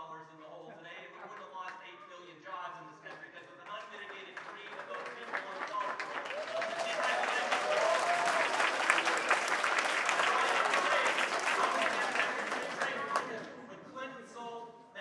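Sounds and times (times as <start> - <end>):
audience applause: 3.6 - 13.6
voices: 8.9 - 14.2.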